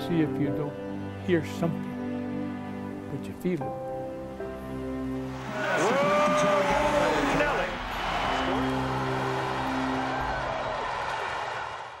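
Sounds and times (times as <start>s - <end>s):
soft music of held chords: 0.0s - 11.0s
crowd cheering and shouting: 5.2s - 12.0s.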